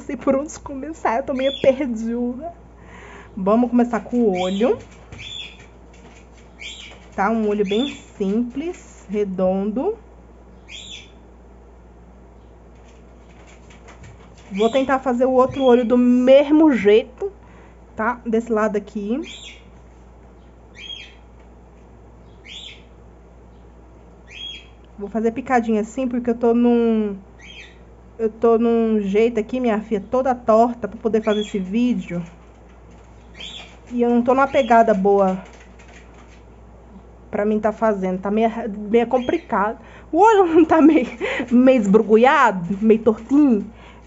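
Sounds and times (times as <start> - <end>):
bird chirping: 1.2 - 2.0, 4.0 - 8.6, 10.5 - 11.3, 14.4 - 16.8, 19.2 - 21.3, 22.2 - 24.9, 27.4 - 27.9, 31.1 - 32.1, 33.1 - 35.0, 39.0 - 39.7.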